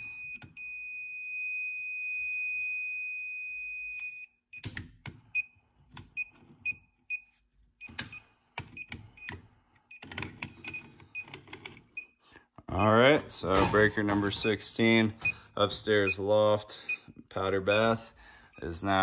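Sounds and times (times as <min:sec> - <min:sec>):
handheld receiver beeping: 0:12.8 - 0:19.0.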